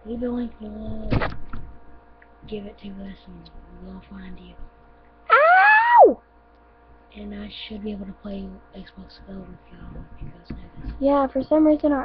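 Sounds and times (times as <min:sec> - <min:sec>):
person yelling in pain: 0:05.3 - 0:06.2.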